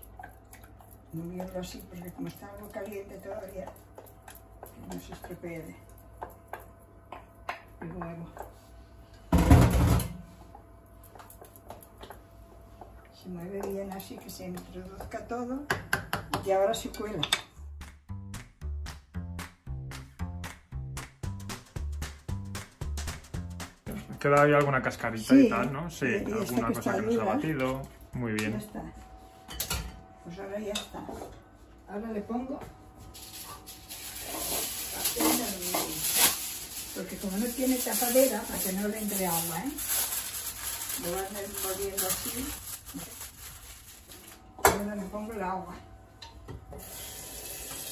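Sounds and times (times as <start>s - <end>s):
aluminium foil crinkling: 33.0s - 44.4s.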